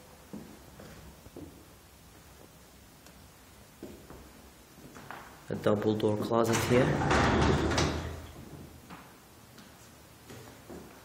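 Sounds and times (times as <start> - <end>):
closet doors sliding open: 6.4 - 8.7.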